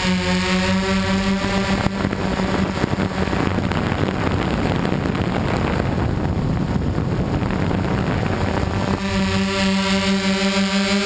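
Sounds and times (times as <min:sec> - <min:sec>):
drone motors humming: 0:00.0 - 0:11.0
wind rushing over microphone: 0:00.0 - 0:11.0.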